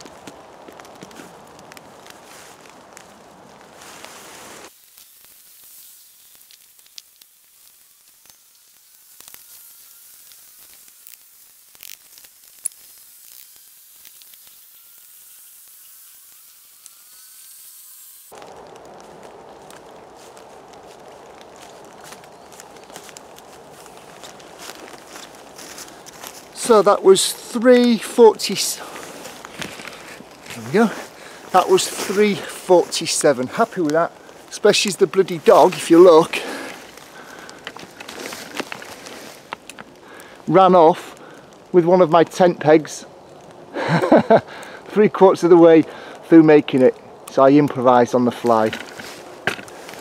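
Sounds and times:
rustling footsteps in dry leaves: 0.0 - 44.4, 45.1 - 50.0
quiet hiss: 0.0 - 50.0.

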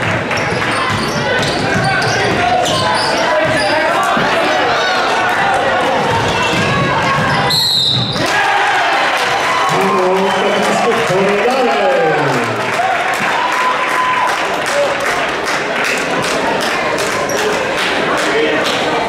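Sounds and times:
crowd voices and shouts: 0.0 - 19.0
basketball bouncing on court: 0.1 - 4.3
referee's whistle blast: 7.5 - 8.2.

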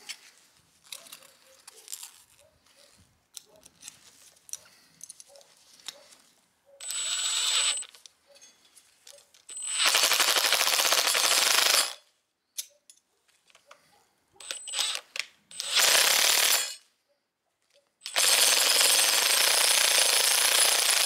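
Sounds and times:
power tool rapid rattle: 6.8 - 7.9, 9.5 - 12.0, 14.4 - 16.8, 18.0 - 21.0.

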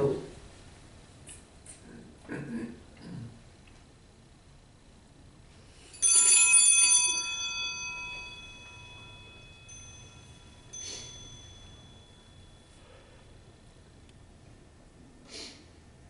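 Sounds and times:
altar bells jangling: 5.9 - 13.4.

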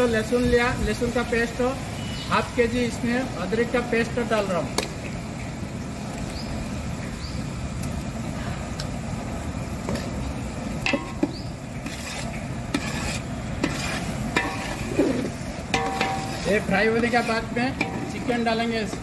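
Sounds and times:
food sizzling in hot oil: 0.0 - 8.2, 9.1 - 19.0
metal spatula scraping a pot: 11.8 - 19.0.

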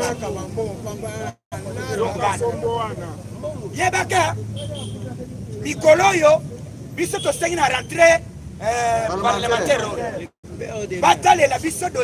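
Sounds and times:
man speaking to crowd: 0.0 - 12.0
voices chattering: 0.0 - 12.0.

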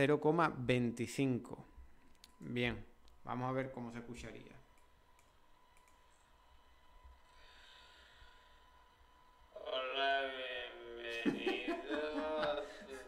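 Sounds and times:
computer mouse clicks: 4.7 - 6.2.

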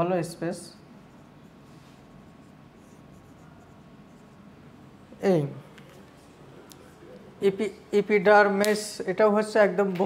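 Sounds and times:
marker writing on whiteboard: 1.0 - 4.6.

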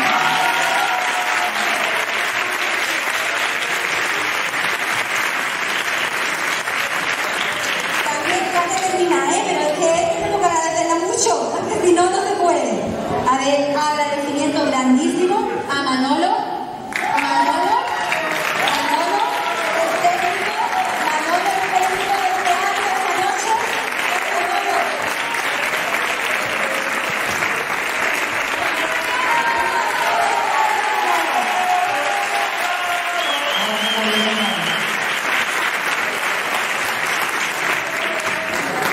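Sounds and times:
audience applauding: 0.0 - 9.4, 16.9 - 38.9.

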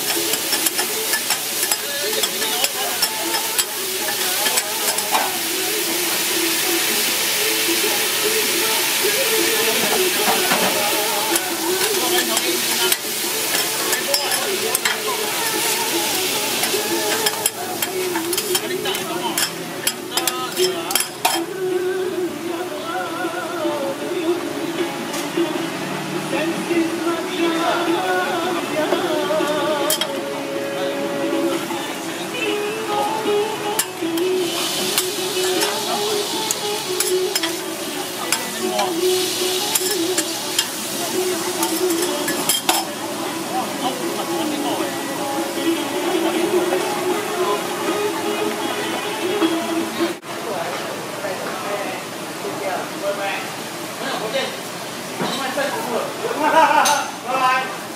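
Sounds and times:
clams sizzling in oil: 0.0 - 21.5, 33.0 - 44.8
metal spatula scraping griddle: 9.6 - 21.5, 33.7 - 43.0
metal spatula scraping and tapping: 16.6 - 21.4, 39.7 - 40.8.

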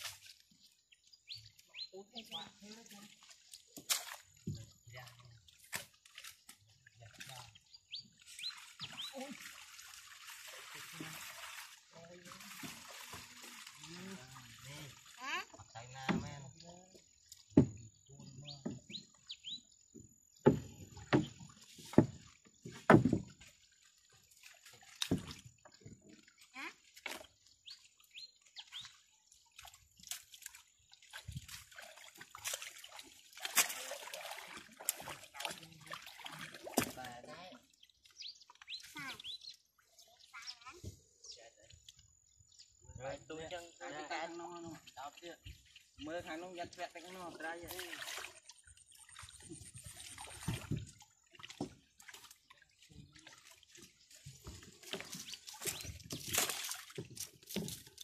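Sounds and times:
water sloshing and trickling: 0.0 - 58.0
small bird chirping: 7.6 - 9.2, 18.2 - 19.8, 27.6 - 29.0, 37.7 - 41.6.

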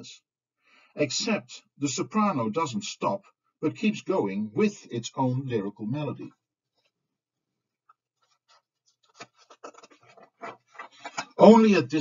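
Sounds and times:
scratchy rustles: 8.2 - 11.1.

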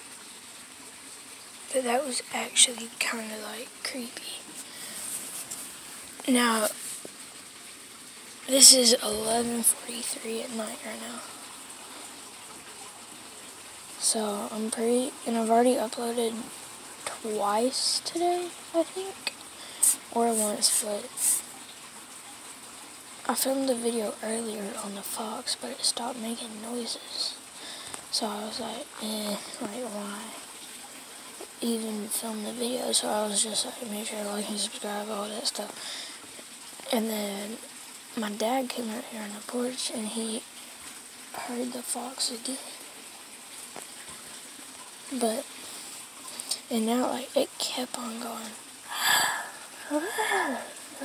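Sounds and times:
faint background noise: 0.0 - 51.0
breathy hiss: 1.8 - 21.7, 24.7 - 31.6, 34.7 - 38.4, 40.3 - 46.8, 47.8 - 51.0.

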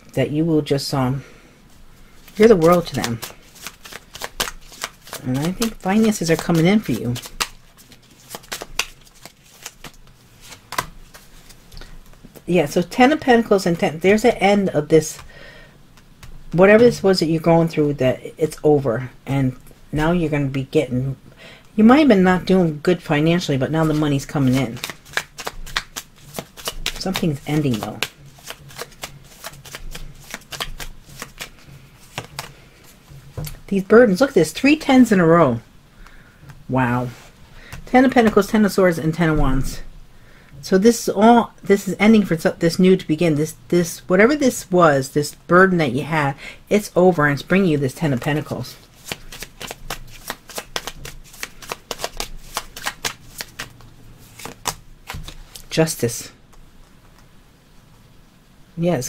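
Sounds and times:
cards being shuffled: 2.0 - 12.4, 16.0 - 17.0, 23.0 - 34.3, 37.1 - 39.6, 47.9 - 55.7.

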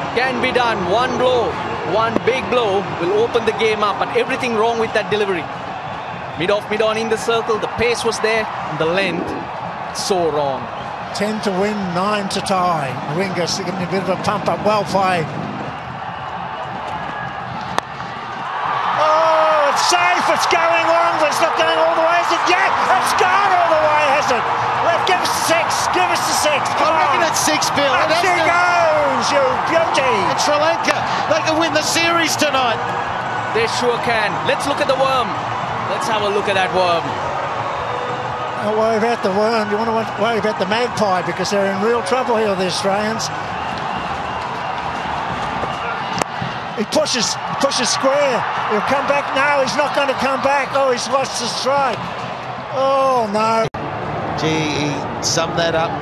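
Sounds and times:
stadium crowd cheering: 0.0 - 56.0.

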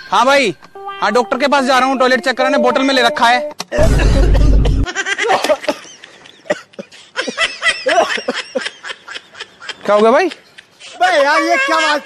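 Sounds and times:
person laughing: 3.7 - 10.4.

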